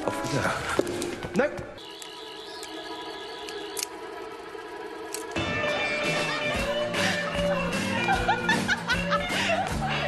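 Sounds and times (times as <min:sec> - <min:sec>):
drone of held tones: 0:01.8 - 0:07.8.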